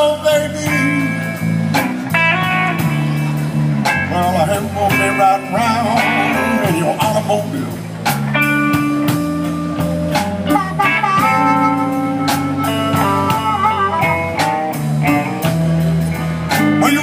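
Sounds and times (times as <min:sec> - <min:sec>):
blues band playing: 0:00.0 - 0:17.0
lead guitar bending notes: 0:00.0 - 0:17.0.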